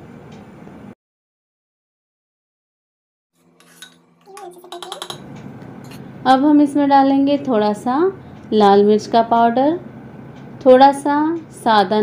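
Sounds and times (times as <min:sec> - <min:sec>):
spoon clinking against bowl: 0:03.6 - 0:05.3.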